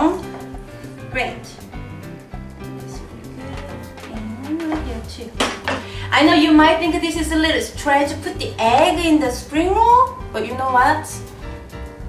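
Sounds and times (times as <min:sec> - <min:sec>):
background music: 0:00.0 - 0:12.0
knife knocking on cutting board: 0:03.6 - 0:05.9.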